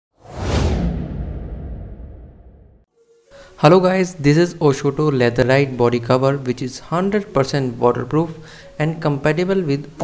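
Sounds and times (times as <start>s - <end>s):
whoosh: 0.1s - 2.9s.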